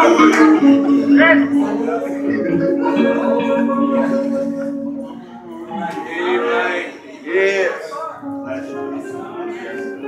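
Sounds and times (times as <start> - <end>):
man singing wordless notes: 0.0 - 6.8.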